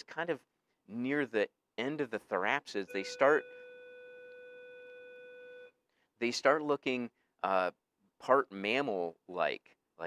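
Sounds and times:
faint steady pitched tone: 2.8 - 5.8.

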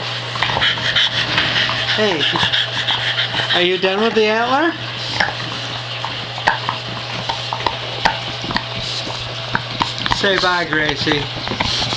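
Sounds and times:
low steady hum: 0.0 - 11.9
dog smacking and licking: 0.3 - 11.9.

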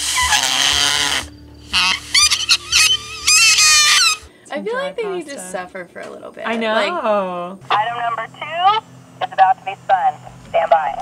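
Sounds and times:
goose-like honking calls: 0.0 - 4.3
two-way radio hiss: 1.7 - 4.5, 7.6 - 11.0.

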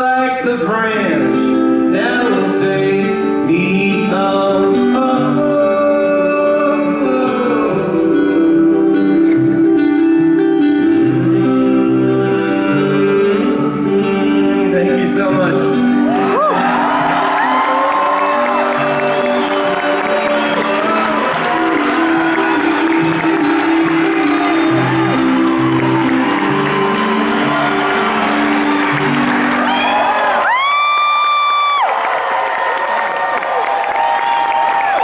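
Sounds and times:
acoustic guitar playing: 0.0 - 30.7
crowd cheering and whooping: 16.1 - 35.0
long high-pitched whoop: 16.2 - 28.9, 29.6 - 35.0.

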